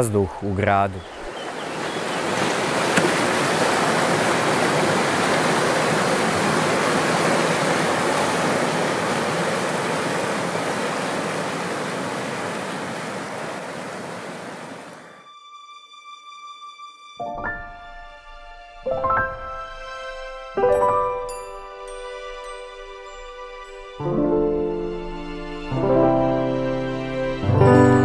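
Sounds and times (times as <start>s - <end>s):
whitewater rushing over rocks: 1.5s - 15.0s.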